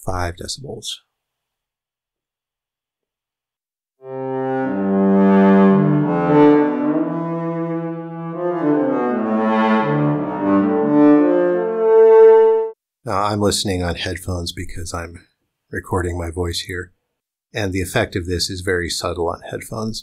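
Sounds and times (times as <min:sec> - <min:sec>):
synthesized cello low notes: 0:04.0 - 0:12.8.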